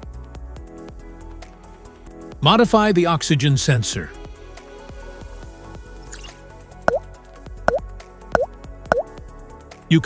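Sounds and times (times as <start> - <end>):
background music: 0.0 - 10.0
water drop plops: 8.4 - 9.1.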